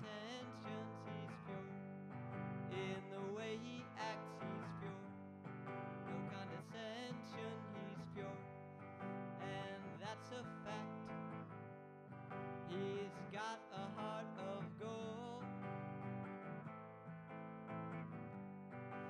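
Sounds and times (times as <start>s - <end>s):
man singing: 0.0s - 11.3s, 12.6s - 15.8s
electric guitar strumming chords: 0.0s - 19.0s.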